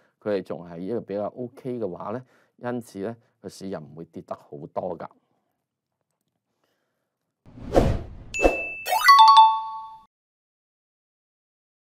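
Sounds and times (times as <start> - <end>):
rising swish: 7.5 - 8.7
whoosh: 7.5 - 8.8
bright two-note chime: 8.4 - 10.1.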